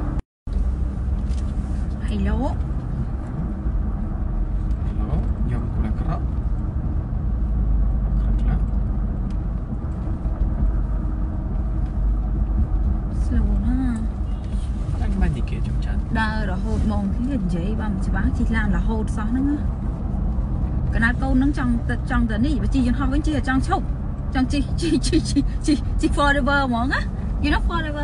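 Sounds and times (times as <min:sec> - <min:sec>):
car interior rumble: 0:00.0 - 0:28.0.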